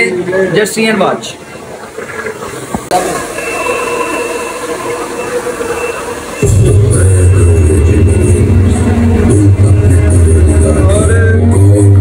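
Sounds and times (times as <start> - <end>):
electronic music with heavy bass: 6.4 - 12.0.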